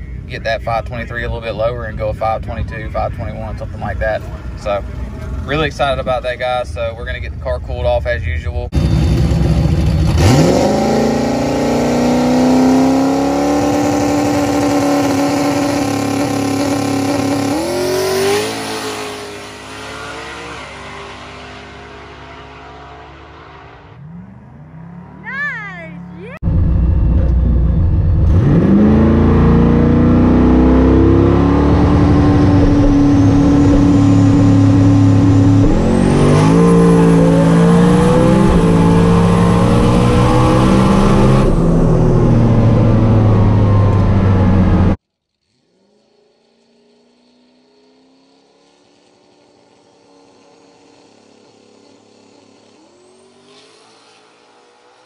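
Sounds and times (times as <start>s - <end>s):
car engine revving at full throttle: 8.7s - 55.0s.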